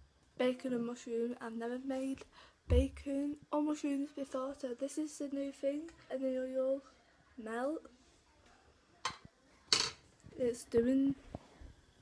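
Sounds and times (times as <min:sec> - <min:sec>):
cookware clattering on hob: 0:09.1 - 0:10.0.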